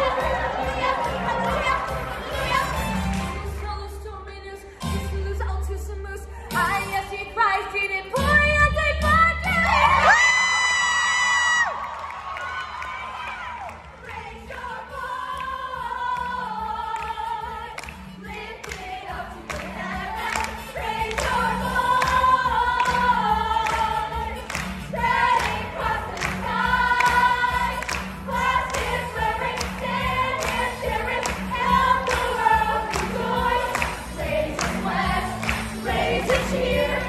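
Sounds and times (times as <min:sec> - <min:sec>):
young voices singing: 0:13.9 - 0:37.0.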